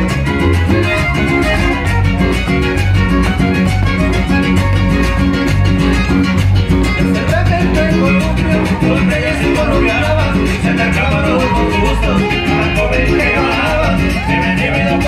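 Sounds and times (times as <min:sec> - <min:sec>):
live band playing dance music: 0:00.0 - 0:15.0.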